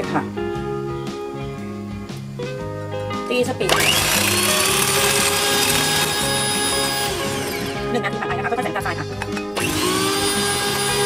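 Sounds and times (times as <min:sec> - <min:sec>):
electric hand mixer whirring: 0:03.7 - 0:08.0, 0:09.2 - 0:11.0.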